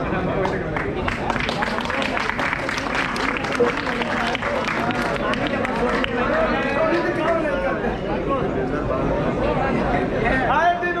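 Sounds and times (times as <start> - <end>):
crowd of men talking: 0.0 - 11.0.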